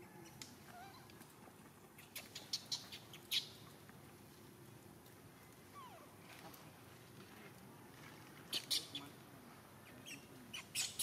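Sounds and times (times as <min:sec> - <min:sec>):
low steady hiss: 0:00.0 - 0:11.0
baby monkey squeak: 0:08.5 - 0:09.0, 0:10.0 - 0:11.0.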